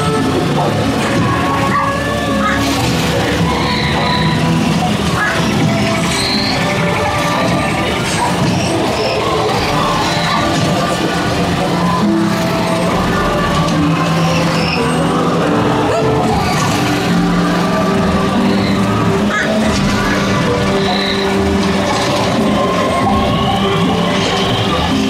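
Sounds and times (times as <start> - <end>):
sustained low musical tones: 0.0 - 25.0.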